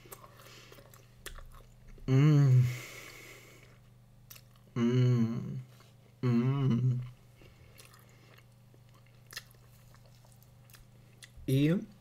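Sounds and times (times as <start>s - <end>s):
faint chewing: 0.0s - 2.0s, 3.1s - 4.8s, 7.0s - 11.4s
person humming while eating: 1.9s - 3.4s, 4.7s - 7.2s.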